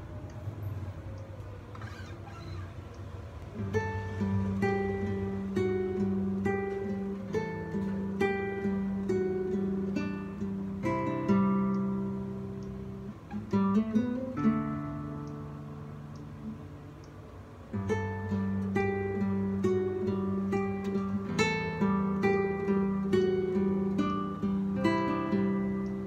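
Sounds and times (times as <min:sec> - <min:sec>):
classical guitar fingerstyle: 0:03.5 - 0:26.0.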